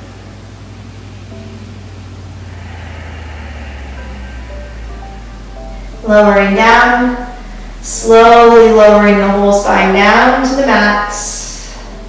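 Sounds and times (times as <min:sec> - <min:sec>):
faint held notes: 0:00.0 - 0:09.5
low sustained drone: 0:00.0 - 0:12.0.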